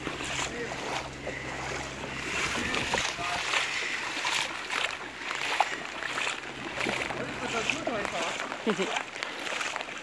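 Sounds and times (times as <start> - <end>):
feet splashing through water: 0.0 - 10.0
steady low hum: 0.0 - 10.0.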